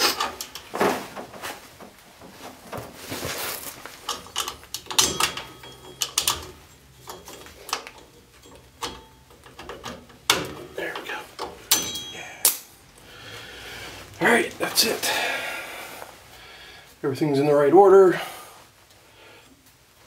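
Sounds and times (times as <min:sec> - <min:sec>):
metallic clicks and clacks: 0:04.0 - 0:12.7.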